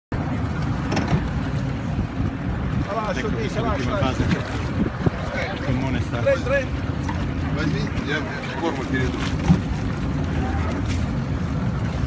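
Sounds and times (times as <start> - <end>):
outboard engine idling: 0.2 - 12.0
wind on microphone: 0.2 - 12.0.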